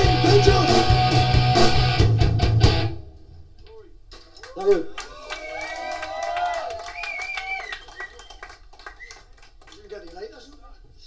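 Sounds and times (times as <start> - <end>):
applause and cheering: 4.4 - 10.6.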